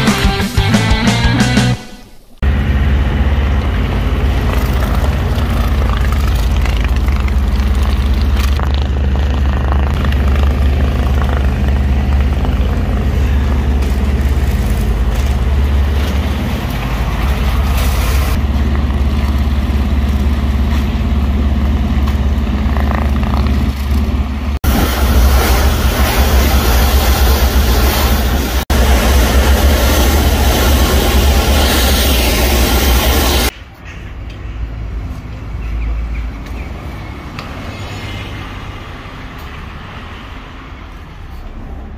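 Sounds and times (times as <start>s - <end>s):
pressure washer engine hum: 0.0s - 33.5s
high-pressure water jet hissing: 10.0s - 18.4s, 24.6s - 33.5s.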